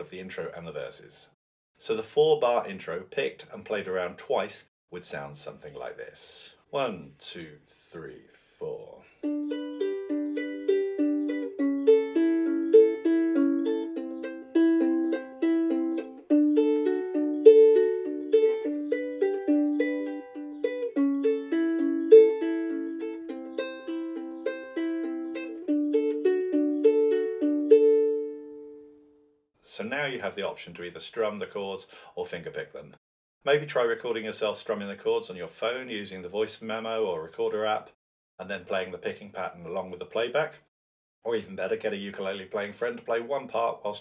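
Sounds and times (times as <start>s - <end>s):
ukulele fingerpicking: 9.2s - 28.6s.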